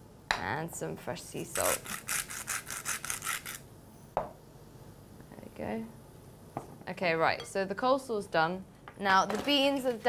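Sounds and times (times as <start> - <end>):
salt grinder grinding: 1.6 - 3.6.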